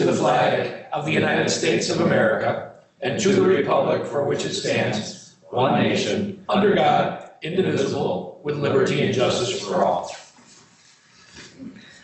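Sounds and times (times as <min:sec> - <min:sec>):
group reciting together: 0:00.0 - 0:10.2
room noise: 0:00.0 - 0:12.0.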